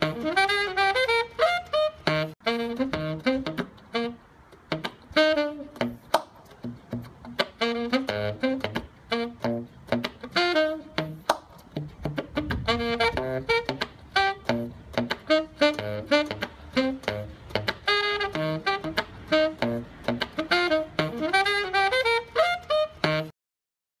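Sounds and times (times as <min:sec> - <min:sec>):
instrumental music with beat: 0:00.0 - 0:23.3.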